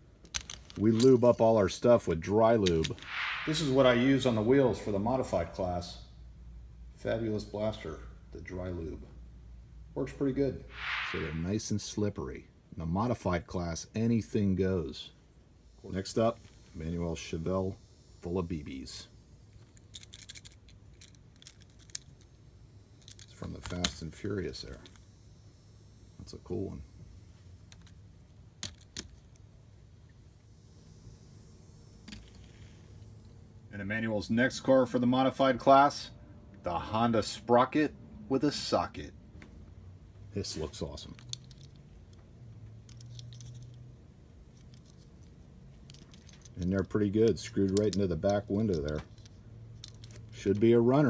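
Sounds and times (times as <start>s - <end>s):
low steady hum: 0.0s - 51.0s
toy car handling clicks: 19.6s - 22.3s, 23.0s - 24.0s, 28.6s - 29.5s, 41.1s - 42.2s, 42.8s - 43.9s, 44.6s - 50.4s.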